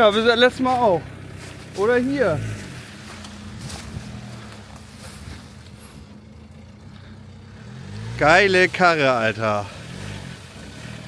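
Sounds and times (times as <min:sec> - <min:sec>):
truck engine at low revs: 0:00.0 - 0:11.0.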